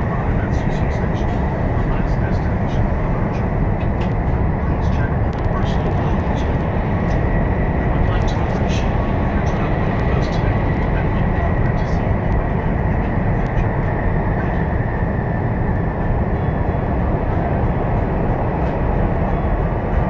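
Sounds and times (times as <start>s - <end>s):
train cabin low rumble and rush: 0.0s - 20.0s
faint high whine: 4.4s - 20.0s.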